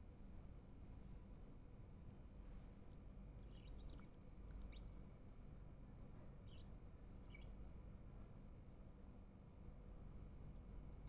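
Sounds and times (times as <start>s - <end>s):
faint high-pitched chirps: 3.4s - 5.1s, 6.4s - 7.6s.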